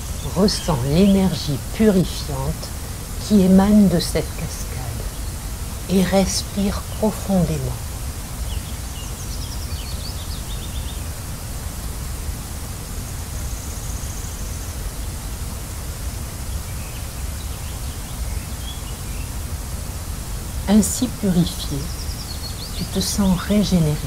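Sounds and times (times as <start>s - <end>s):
waterfall rushing: 0.0s - 9.1s
faint bird chirps: 20.8s - 24.0s.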